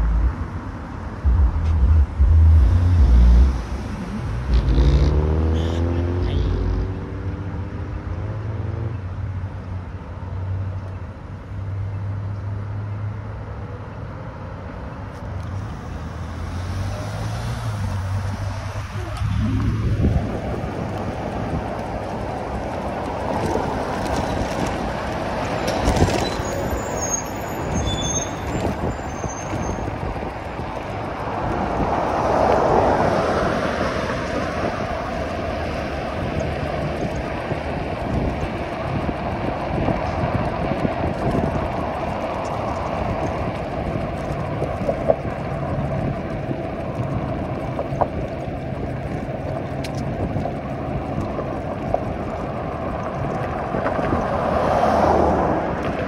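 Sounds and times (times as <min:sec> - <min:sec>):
road traffic: 0:00.0 - 0:56.0
vehicle engine humming: 0:00.0 - 0:56.0
wind and tyre noise: 0:00.0 - 0:56.0.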